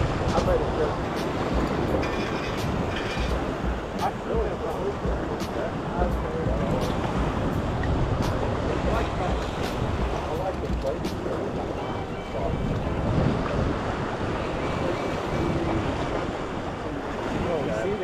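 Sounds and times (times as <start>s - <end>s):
surf washing against rocks: 0.0s - 18.0s
wind buffeting microphone: 0.0s - 18.0s.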